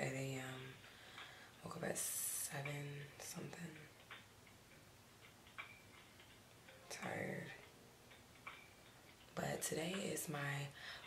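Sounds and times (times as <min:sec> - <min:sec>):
faint ticks: 0:00.0 - 0:11.0.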